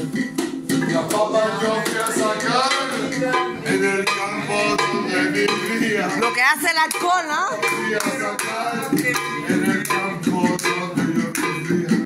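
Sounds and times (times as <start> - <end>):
hand drum beating: 0.0 - 12.0
maraca shaking: 0.0 - 12.0
voices singing: 0.6 - 12.0.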